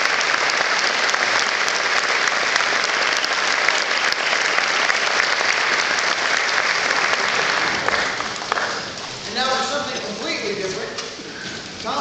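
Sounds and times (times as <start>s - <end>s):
audience noise: 0.0s - 12.0s
man talking: 9.2s - 11.2s.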